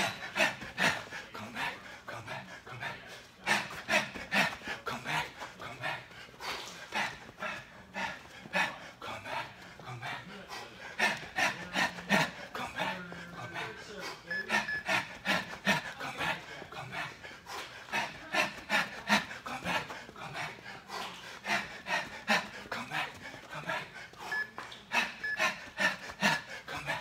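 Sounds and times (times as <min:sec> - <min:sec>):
hard breathing: 0:00.0 - 0:27.0.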